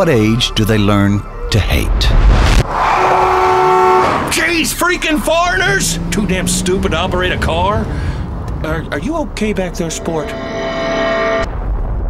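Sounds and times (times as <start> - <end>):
car engine rumble: 3.8 - 10.7.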